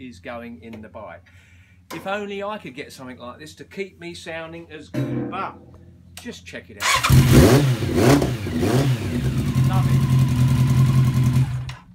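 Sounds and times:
motorcycle engine idling: 0:08.3 - 0:11.9.

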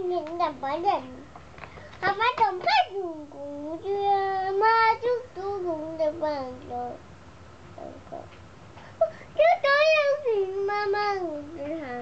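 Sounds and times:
toddler chanting sing-song: 0:02.0 - 0:07.0, 0:09.0 - 0:12.0.

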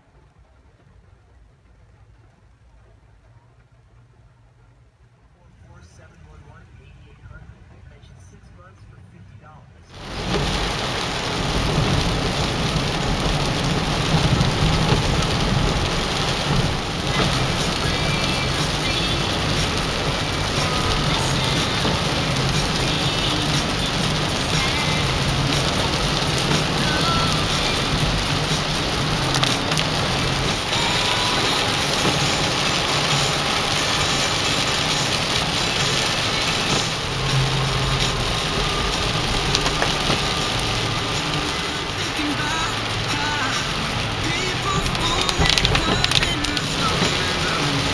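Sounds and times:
heavy rain on a car: 0:00.0 - 0:05.3, 0:09.9 - 0:47.9
tyres on a wet road: 0:00.0 - 0:47.9.

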